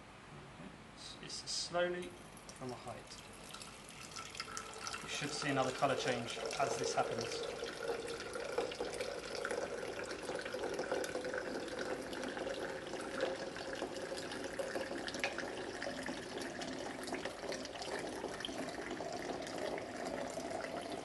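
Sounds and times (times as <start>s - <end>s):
liquid pouring into glass beaker: 2.2s - 21.0s.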